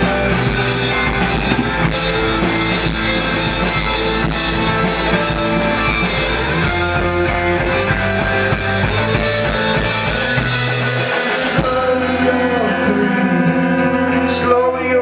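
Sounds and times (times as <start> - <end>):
distorted electric guitars: 0.0 - 15.0
drums: 0.0 - 15.0
electric bass: 0.0 - 15.0.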